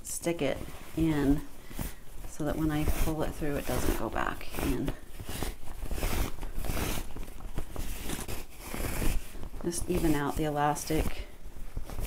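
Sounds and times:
fabric rustling and scrunching: 0.0 - 12.0.

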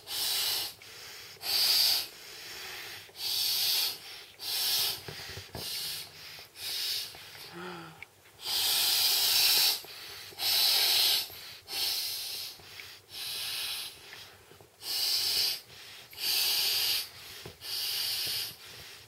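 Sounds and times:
quiet breaths drawn in: 0.0 - 19.0.

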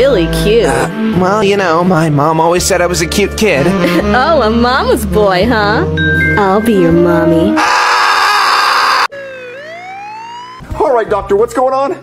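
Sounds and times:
cartoon siren wailing: 7.6 - 10.6.

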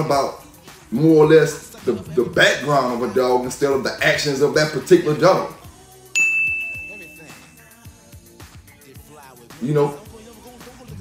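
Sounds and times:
faint background music: 0.0 - 11.0
bell-like ding: 6.2 - 7.7.

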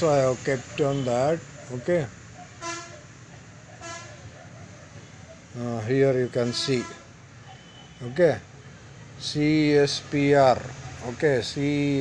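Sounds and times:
vehicle horn toots: 2.6 - 3.0, 3.8 - 4.1, 6.4 - 8.0.

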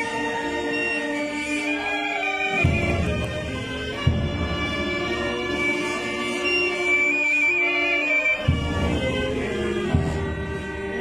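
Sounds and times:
brass band funeral march: 0.0 - 11.0
deep drum beats: 8.5 - 11.0.

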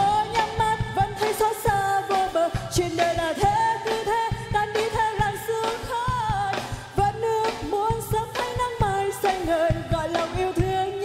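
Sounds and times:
band with drum beat: 0.0 - 11.0
woman singing: 0.0 - 11.0.

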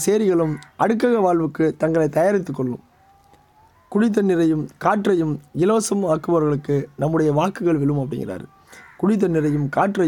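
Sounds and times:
man reciting a poem: 0.0 - 2.9, 3.9 - 10.0.

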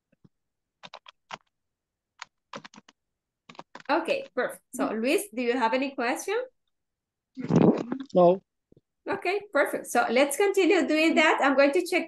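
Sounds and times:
computer keyboard keystrokes: 0.8 - 1.5, 2.2 - 4.3.

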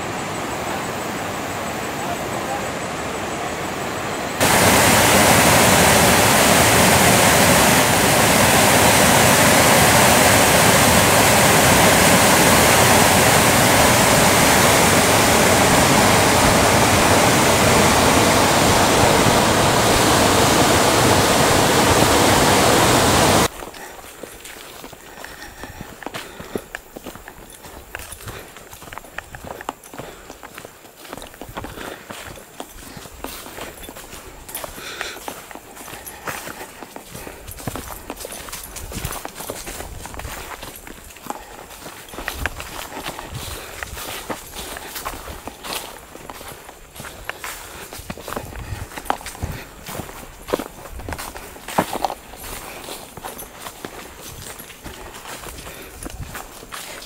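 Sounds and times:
whitewater rapids rushing: 0.0 - 23.5
footsteps on leafy dirt trail: 4.4 - 57.0
leaves rustling: 4.4 - 57.0.

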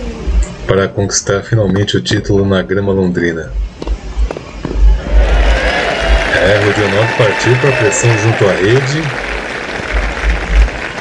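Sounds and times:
crowd applauding: 5.0 - 11.0.

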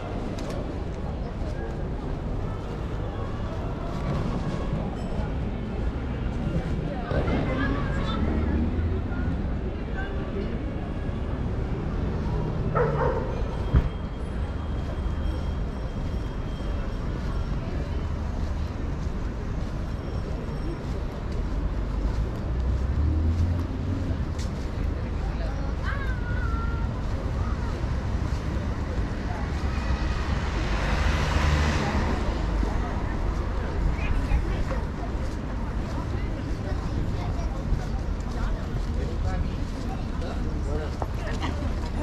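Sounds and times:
passers-by talking: 0.0 - 42.0
traffic rumble: 0.0 - 42.0.

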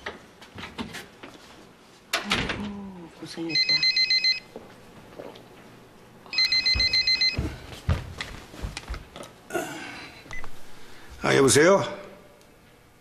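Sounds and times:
telephone ringing electronic trill: 3.5 - 4.4, 6.3 - 7.4.

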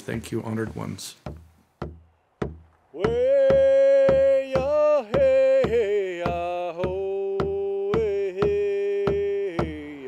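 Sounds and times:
deep drum beats: 1.2 - 10.0
person singing: 3.0 - 10.0.

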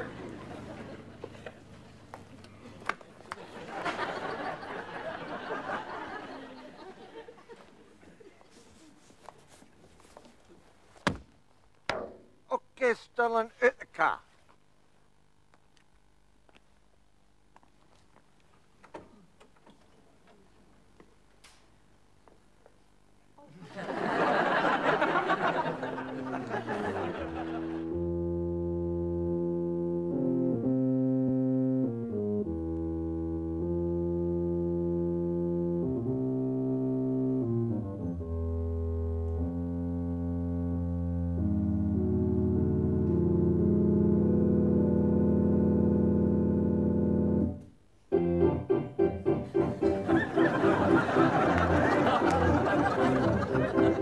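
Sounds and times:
organ playing held chords: 0.0 - 8.0, 23.8 - 54.0.

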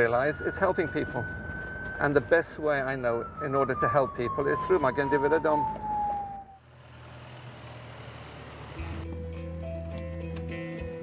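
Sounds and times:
ambulance interior noise: 0.0 - 6.6
siren falling tone: 0.0 - 6.6
music with plucked guitar: 9.0 - 11.0.

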